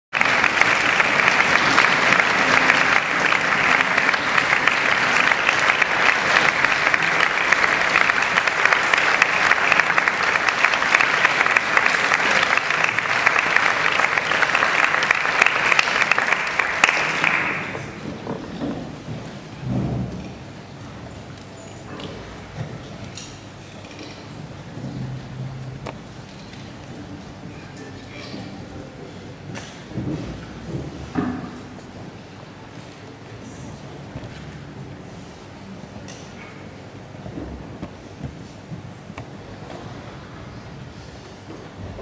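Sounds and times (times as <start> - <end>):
audience applauding: 0.1 - 18.0.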